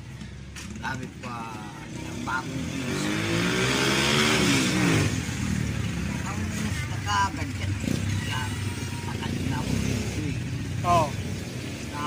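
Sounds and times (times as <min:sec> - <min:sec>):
motor vehicle engine running: 0:00.0 - 0:12.0.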